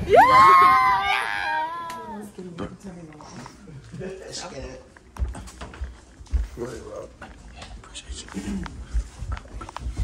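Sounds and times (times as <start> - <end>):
footsteps climbing stairs: 4.6 - 10.0.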